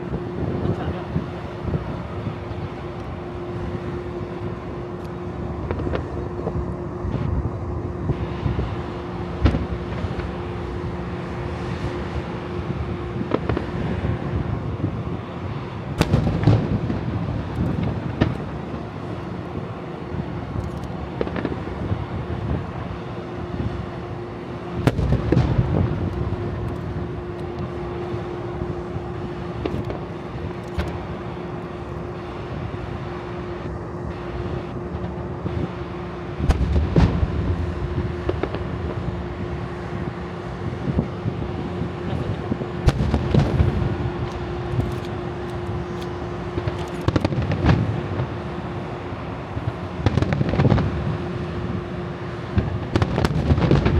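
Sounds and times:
steady low hum: 0.0s - 53.9s
heavy firework booms: 16.0s - 18.4s, 24.8s - 26.6s, 36.4s - 39.6s, 42.4s - 44.2s, 46.5s - 48.3s, 50.0s - 51.1s, 52.5s - 53.9s.

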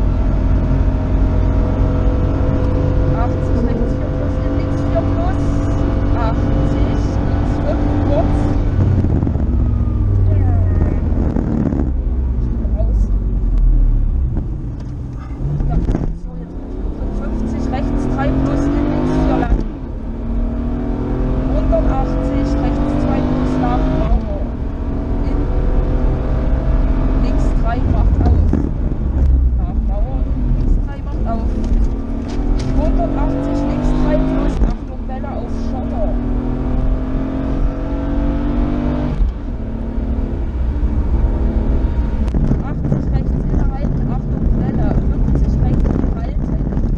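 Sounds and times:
rally car engine revving: 0.0s - 46.9s.

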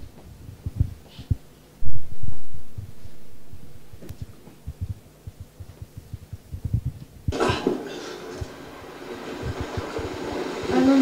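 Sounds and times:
low irregular thumps: 0.2s - 7.4s.

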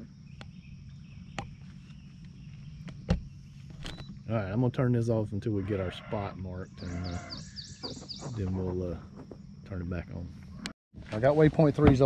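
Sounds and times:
high insect drone: 0.0s - 10.5s.

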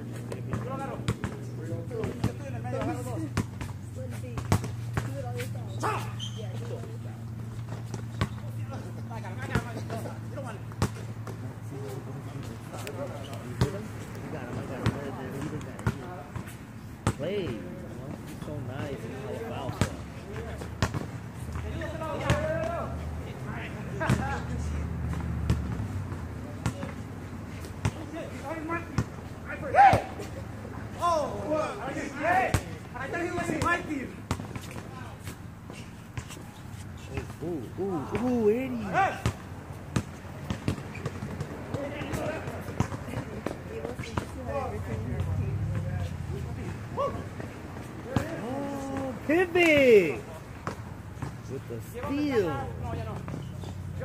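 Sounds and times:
basketballs bouncing on hard court: 0.4s - 5.6s, 7.6s - 11.4s, 14.5s - 17.6s, 19.6s - 22.8s, 24.0s - 27.1s, 33.4s - 35.1s, 38.0s - 45.9s, 50.6s - 53.8s
distant players shouting: 5.7s - 6.7s, 21.6s - 24.8s, 27.9s - 34.2s, 36.4s - 39.6s, 41.0s - 54.0s.

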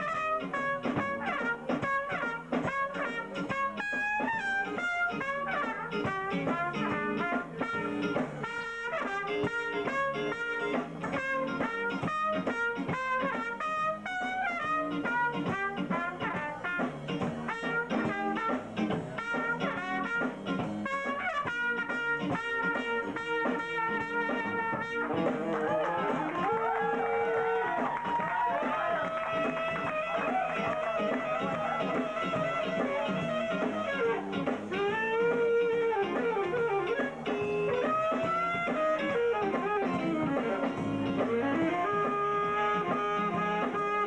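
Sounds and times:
jazz band with brass: 0.0s - 44.0s
trumpet playing fast lines: 0.0s - 44.0s.

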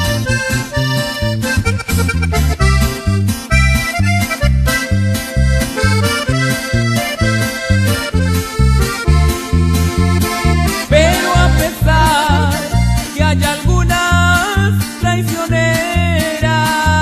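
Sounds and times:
bouncing bass line: 0.0s - 16.2s
accordion melody: 0.0s - 16.8s.

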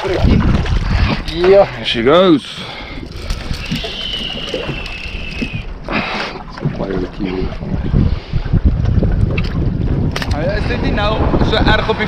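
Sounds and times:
wind and sea rushing: 0.0s - 12.0s.

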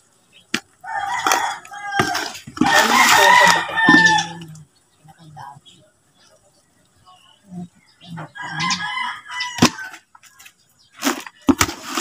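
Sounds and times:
rooster crowing: 0.8s - 4.4s, 8.3s - 10.0s.

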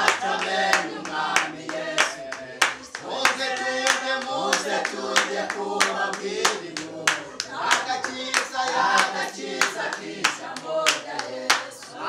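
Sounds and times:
people clapping on a beat: 0.0s - 12.0s
people singing together: 0.0s - 12.0s.

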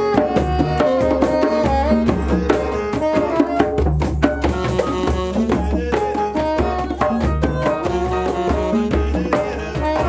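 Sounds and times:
djembe hand drums: 0.0s - 10.0s
saxophone playing slow melody: 0.0s - 10.0s.

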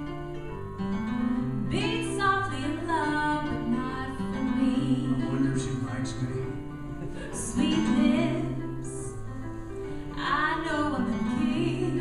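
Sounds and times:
acoustic guitar: 0.0s - 12.0s
gliding melodic line: 0.0s - 12.0s
live acoustic band playing: 0.0s - 12.0s.

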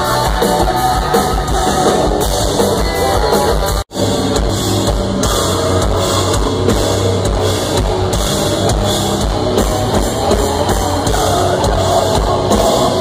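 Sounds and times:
distorted electric guitars: 0.0s - 13.0s
drums: 0.0s - 13.0s.

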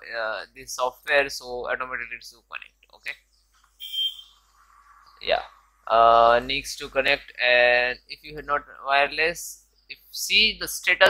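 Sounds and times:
short electronic beep: 3.8s - 4.4s.

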